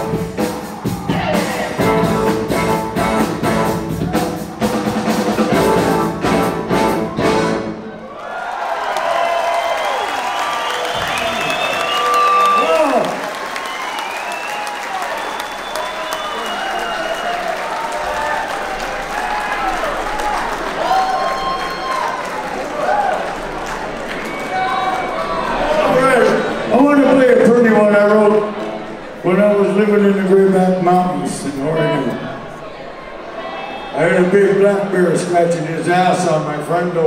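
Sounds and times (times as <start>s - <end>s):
crowd cheering and whistling: 0.0s - 2.2s, 6.7s - 35.0s
live rock band playing: 0.0s - 8.0s
audience applause: 7.9s - 34.3s.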